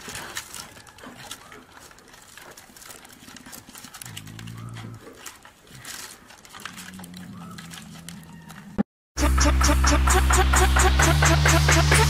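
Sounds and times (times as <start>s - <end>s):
claws scraping on bark: 0.0s - 8.8s
low drawn-out pitched sound: 9.2s - 12.0s.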